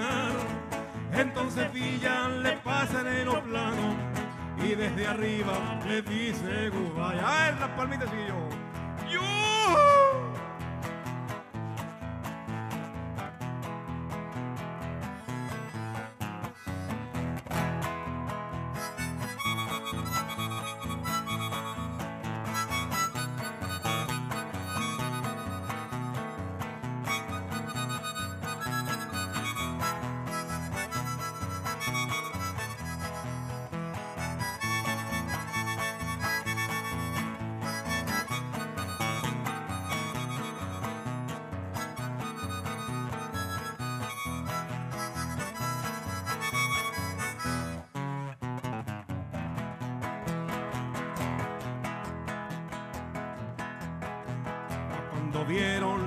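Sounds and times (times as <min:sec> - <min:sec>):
strummed acoustic guitar: 0:00.0 - 0:56.0
harmonica solo: 0:09.0 - 0:10.5, 0:14.8 - 0:48.5.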